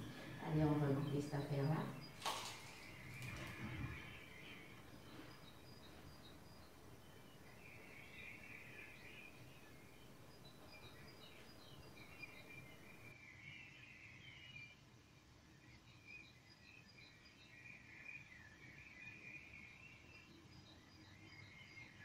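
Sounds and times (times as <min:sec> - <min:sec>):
bird chirps: 0:00.0 - 0:14.8.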